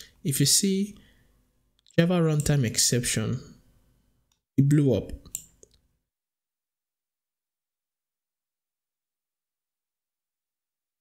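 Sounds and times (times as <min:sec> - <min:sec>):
computer mouse clicks: 0:05.2 - 0:05.8.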